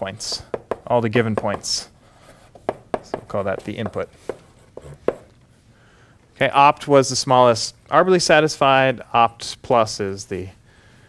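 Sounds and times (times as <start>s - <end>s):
chalk clicking on blackboard: 2.4s - 5.3s.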